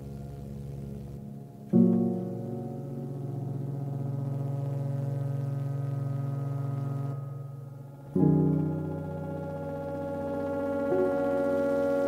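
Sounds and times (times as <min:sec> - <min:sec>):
low synthesizer drone: 0:00.0 - 0:12.0.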